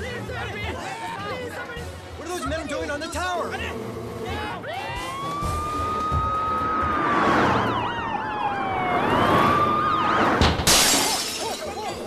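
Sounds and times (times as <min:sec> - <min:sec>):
police siren wailing: 0:05.0 - 0:10.6
warbling siren: 0:05.1 - 0:10.4.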